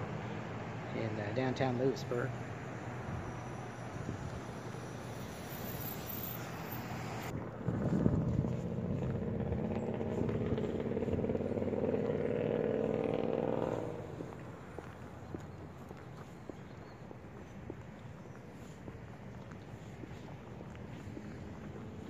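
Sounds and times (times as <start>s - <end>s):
street noise: 0.0s - 22.0s
vehicle driving by: 2.2s - 15.2s.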